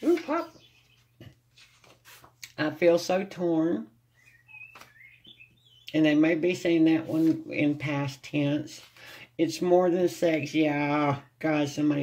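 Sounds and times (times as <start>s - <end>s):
bird chirping: 0.0s - 1.4s, 4.1s - 6.3s.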